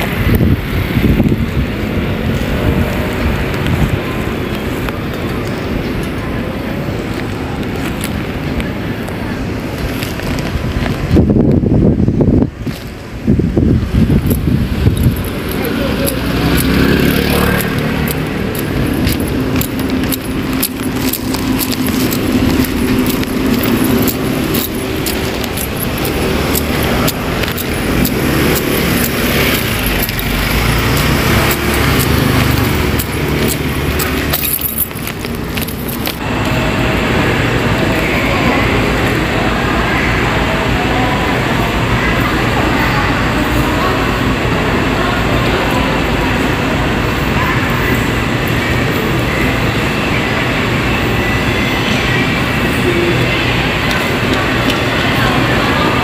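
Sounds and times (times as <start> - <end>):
wind buffeting microphone: 0.0 - 37.2
engine hum: 0.0 - 56.0
road traffic: 0.0 - 56.0.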